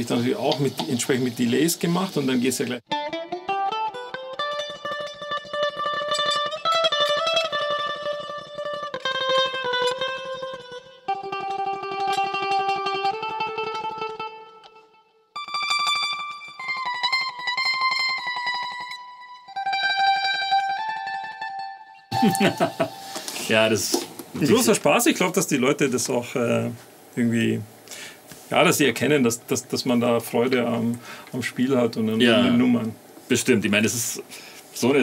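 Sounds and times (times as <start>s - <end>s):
mandolin tremolo melody: 2.9s - 23.4s.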